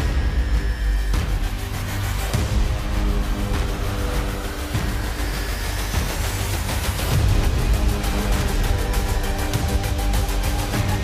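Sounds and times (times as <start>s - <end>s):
theme music: 0.0s - 11.0s.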